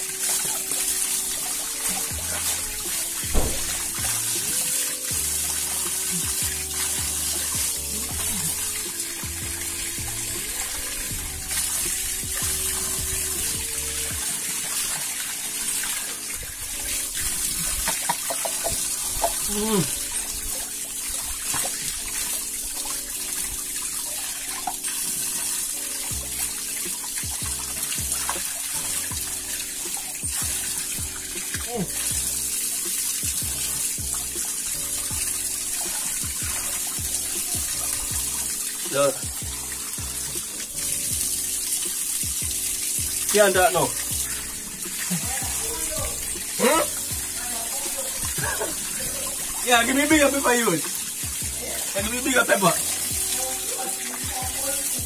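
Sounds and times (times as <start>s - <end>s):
background music: 0.0s - 55.0s
tap water running into sink: 0.0s - 55.0s
water splashing on hands: 0.0s - 55.0s
short vocal sounds: 19.5s - 19.9s.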